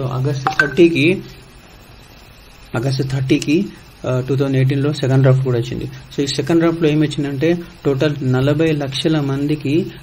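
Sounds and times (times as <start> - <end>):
man speaking: 0.2 - 1.2.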